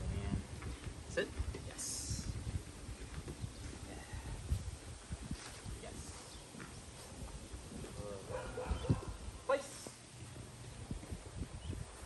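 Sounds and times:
footsteps on grass: 0:02.2 - 0:08.1.

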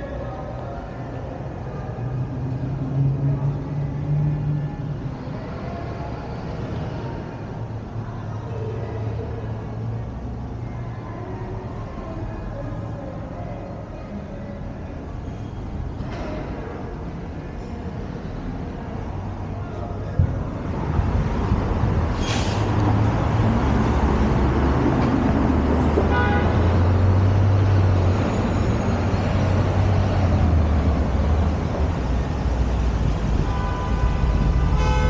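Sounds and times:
rumble of passing cars: 0:00.0 - 0:35.0
brief hiss: 0:22.2 - 0:22.7
car horn toot: 0:26.1 - 0:26.6, 0:33.4 - 0:35.0
horn-like tone: 0:33.4 - 0:35.0.

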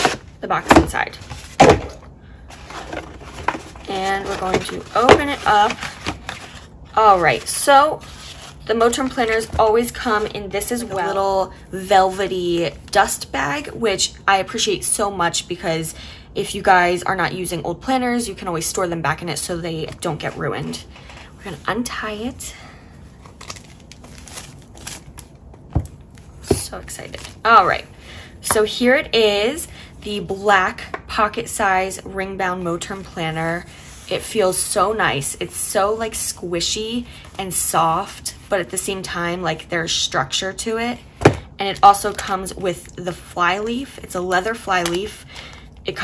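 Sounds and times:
cardboard boxes being handled: 0:00.0 - 0:10.3
box knocking on countertop: 0:41.2 - 0:41.4.

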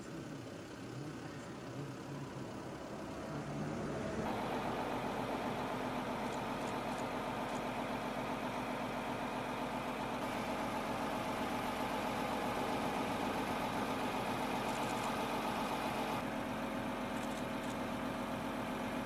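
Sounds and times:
steady mechanical drone: 0:00.0 - 0:19.0.

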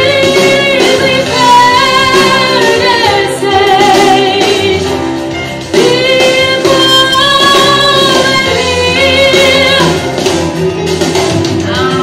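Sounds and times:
woman singing into a microphone: 0:00.0 - 0:05.0, 0:05.8 - 0:10.2, 0:11.6 - 0:12.0
instrumental backing music: 0:00.0 - 0:12.0.

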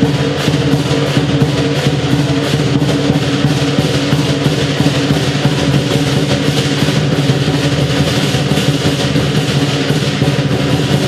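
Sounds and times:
clashing cymbals: 0:00.0 - 0:11.0
gong: 0:00.0 - 0:11.0
lion drum beaten fast: 0:00.0 - 0:11.0.

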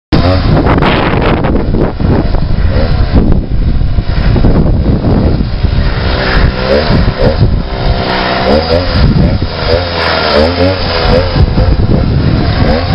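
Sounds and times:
small gasoline engine revving: 0:00.1 - 0:12.9.

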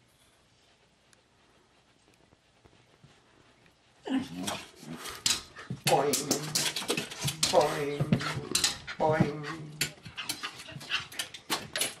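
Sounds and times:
dog panting: 0:00.7 - 0:12.0
dog claws clicking and scuffing: 0:04.4 - 0:12.0.

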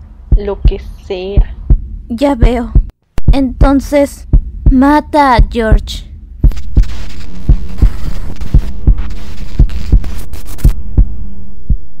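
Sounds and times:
fast heartbeat: 0:01.4 - 0:12.0.

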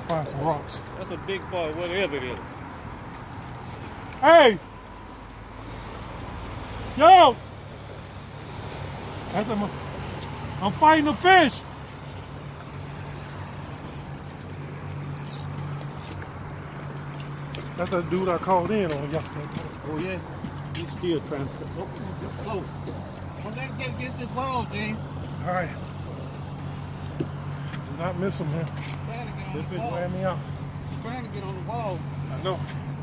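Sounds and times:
low engine hum: 0:00.0 - 0:33.0
outdoor background noise: 0:00.0 - 0:33.0.

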